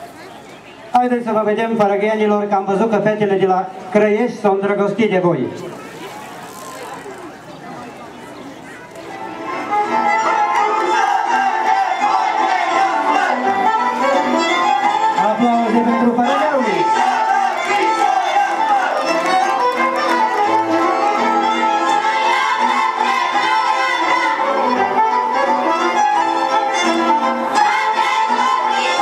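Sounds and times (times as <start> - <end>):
fiddle-led folk dance music: 8.8 - 29.0.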